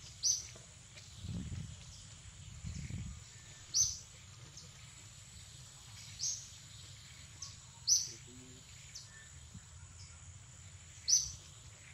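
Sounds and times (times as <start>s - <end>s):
faint outdoor background noise: 0.0s - 11.9s
high bird chirp: 2.7s - 4.1s, 7.3s - 10.2s, 11.0s - 11.5s.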